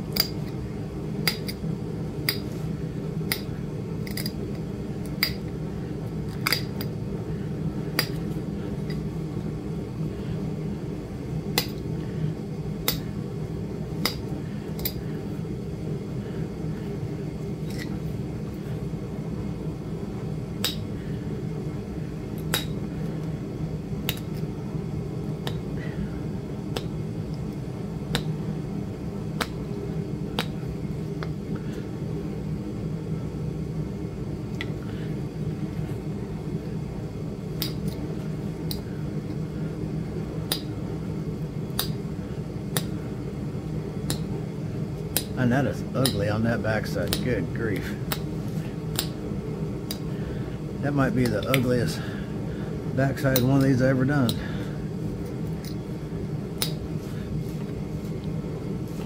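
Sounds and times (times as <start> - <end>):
low background hum: 0.0 - 59.0.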